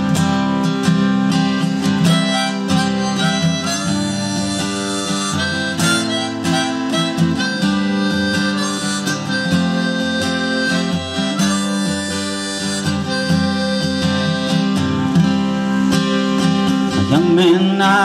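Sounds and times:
harmonica playing: 0.0 - 17.9
strummed acoustic guitar: 0.0 - 18.0.

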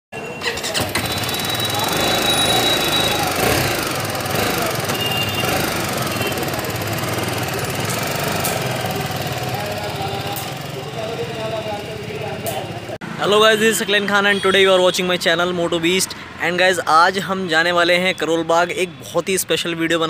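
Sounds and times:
street noise: 0.1 - 20.0
voices: 0.2 - 20.0
motorcycle engine running: 0.8 - 13.0.

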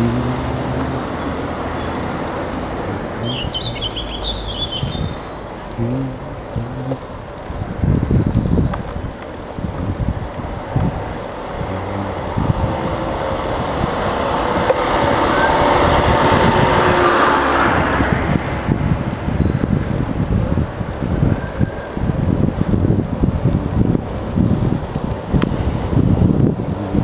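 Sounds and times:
motor scooter passing: 0.0 - 27.0
wind rumble on microphone: 0.0 - 27.0.

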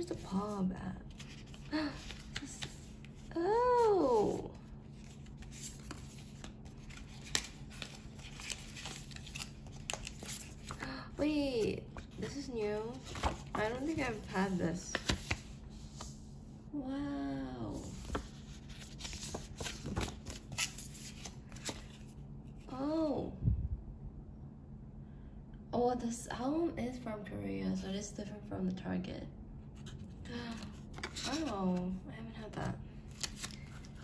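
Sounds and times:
paper cards rustling: 0.1 - 10.9, 11.6 - 16.2, 17.8 - 22.2, 29.8 - 31.9, 33.0 - 34.0
paper rustling and sliding: 12.0 - 16.2, 17.8 - 22.1.

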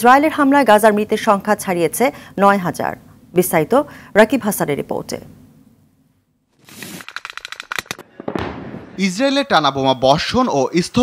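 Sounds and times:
gunfire cracks: 7.7 - 9.0
heavy bang with rumble: 8.1 - 9.0.

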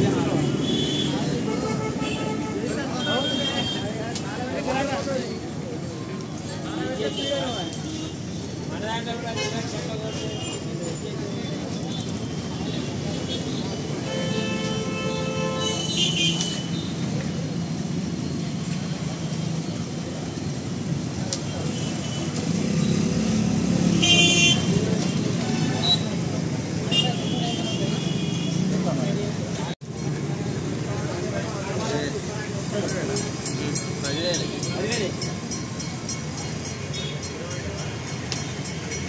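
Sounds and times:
road traffic: 0.0 - 39.0
vehicle horn: 14.0 - 16.8, 24.0 - 25.2.

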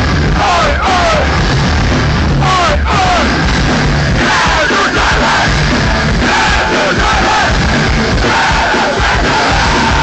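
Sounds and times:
drums beating: 0.0 - 10.0
punk band playing live: 0.0 - 10.0
crowd shouting along: 0.3 - 1.4, 2.4 - 3.4, 4.1 - 10.0.

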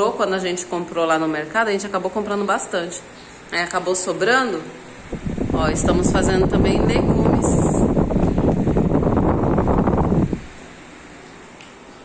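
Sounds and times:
wind buffeting microphone: 5.0 - 10.6.

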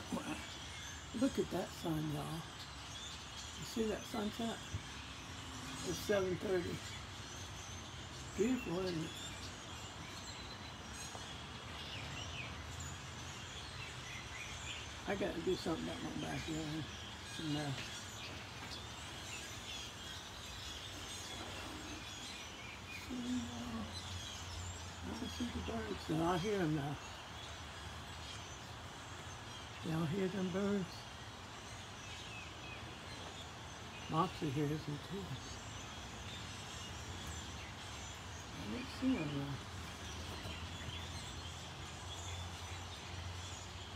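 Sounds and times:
faint bird chirps: 0.0 - 43.9.

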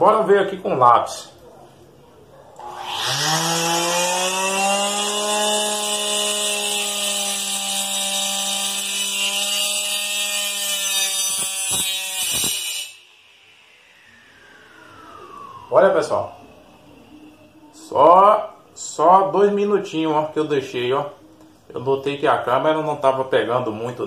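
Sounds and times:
cutting disc cutting pencil: 2.6 - 13.0
small saw motor whining: 2.6 - 17.7.

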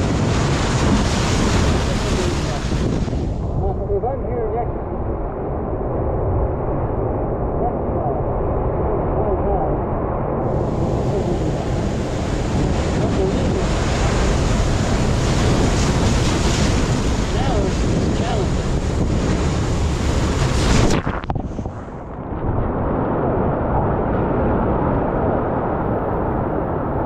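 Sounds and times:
surf breaking over rocks: 0.0 - 3.9, 10.4 - 25.8
wind buffeting microphone: 0.0 - 27.0.

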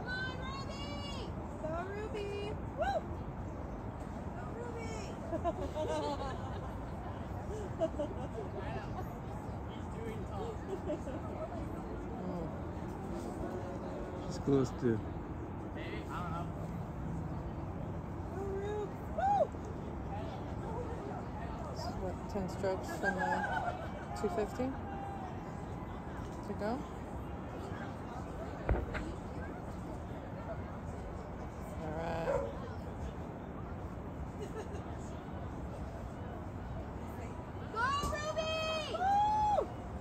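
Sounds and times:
low background noise: 0.0 - 40.0.

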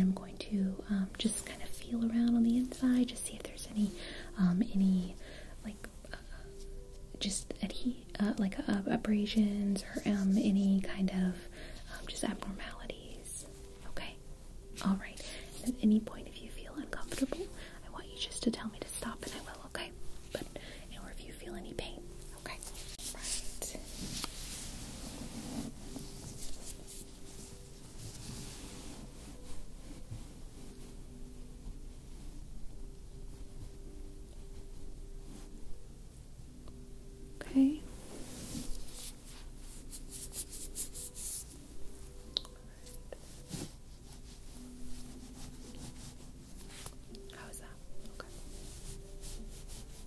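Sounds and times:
soft whispering: 0.0 - 31.0, 37.4 - 41.5, 42.4 - 50.0
light scratchy touches: 22.4 - 31.0
blanket rubbing on microphone: 22.6 - 31.2, 38.0 - 42.2, 43.1 - 47.1, 48.2 - 50.0.

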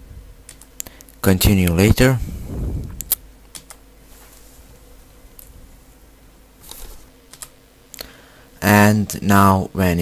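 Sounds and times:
faint steady hum: 0.0 - 10.0
keyboard and mouse clicks: 3.0 - 3.8, 6.7 - 8.0.

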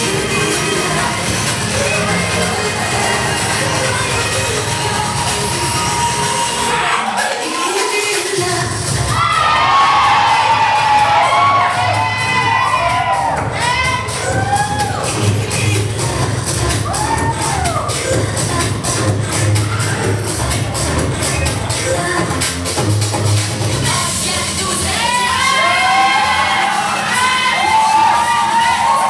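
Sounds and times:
spectators cheering and shouting: 0.0 - 21.9, 23.8 - 29.0
loud dance music: 0.0 - 29.0.

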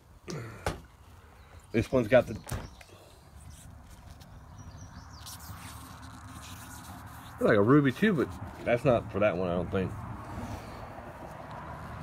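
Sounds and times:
handling trading cards: 2.3 - 4.5, 5.1 - 9.0.

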